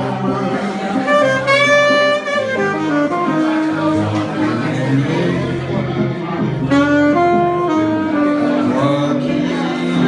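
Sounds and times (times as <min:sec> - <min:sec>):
acoustic guitar accompaniment: 0:00.0 - 0:10.0
saxophone melody: 0:00.0 - 0:10.0.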